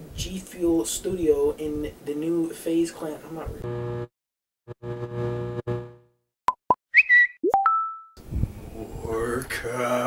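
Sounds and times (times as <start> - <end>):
short pure tones: 3.6 - 4.1, 4.7 - 6.2.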